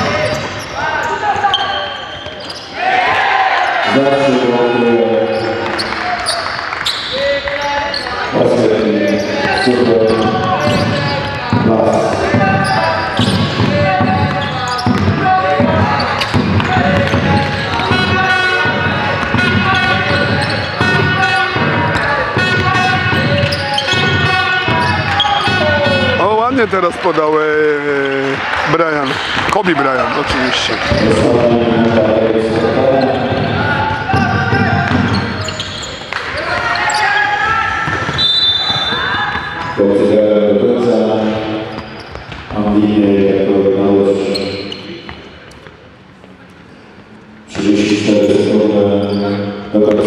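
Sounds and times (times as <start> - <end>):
voices: 0.0 - 41.9
basketball bouncing on hardwood: 10.2 - 26.2.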